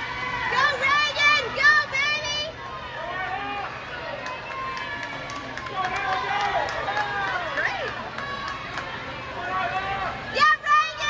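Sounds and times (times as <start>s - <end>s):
people shouting and cheering: 0.0s - 11.0s.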